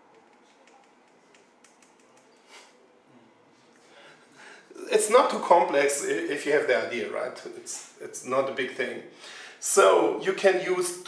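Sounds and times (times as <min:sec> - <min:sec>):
computer keys clicking: 0:00.0 - 0:02.4
quiet room hiss: 0:00.0 - 0:11.0.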